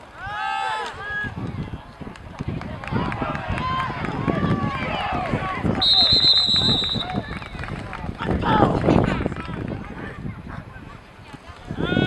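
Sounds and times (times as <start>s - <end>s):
voices shouting and cheering: 0.0s - 12.0s
referee's whistle: 5.8s - 7.2s.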